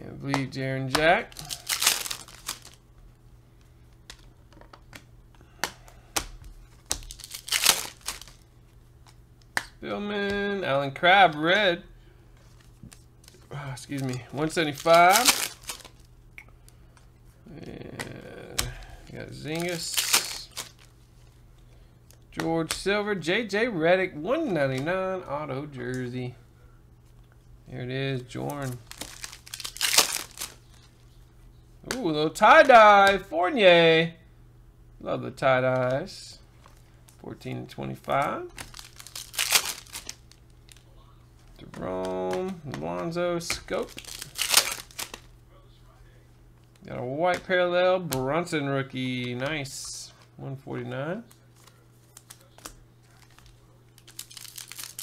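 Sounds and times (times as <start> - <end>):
cards rustling: 0.3 - 2.8, 3.6 - 11.6, 12.4 - 21.4, 28.2 - 31.2, 31.8 - 33.3, 35.6 - 45.3, 46.6 - 55.0
foil wrappers crinkling: 0.9 - 2.8, 5.4 - 8.5, 12.4 - 16.8, 17.6 - 21.4, 28.4 - 31.1, 37.9 - 42.4, 43.0 - 45.3, 51.3 - 55.0.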